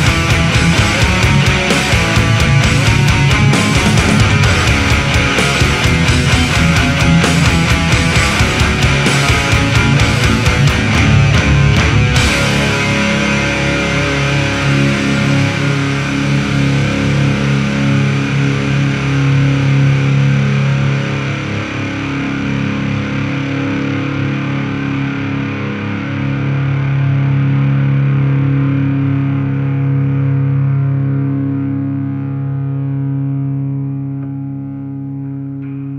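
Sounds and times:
distorted electric guitar chords: 0:00.0 - 0:35.9.

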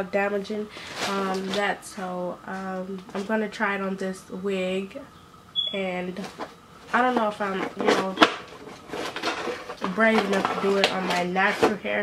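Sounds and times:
hard objects tapping and rustling: 0:06.2 - 0:12.0.

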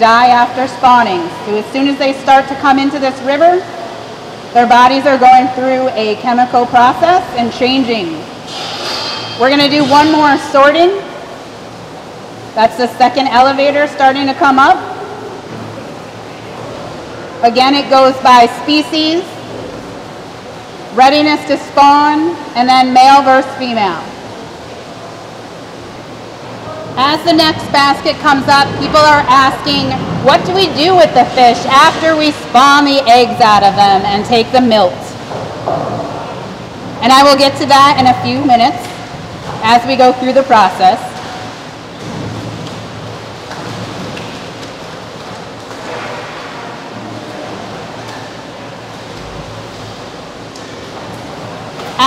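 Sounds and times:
running water rushing: 0:00.0 - 0:52.0.

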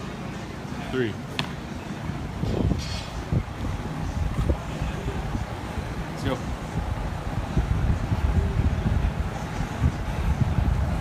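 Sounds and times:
steady low rumble: 0:02.1 - 0:11.0.

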